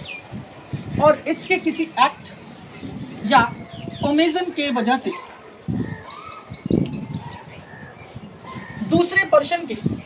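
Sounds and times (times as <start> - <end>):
small bird chirping: 5.4 - 8.8.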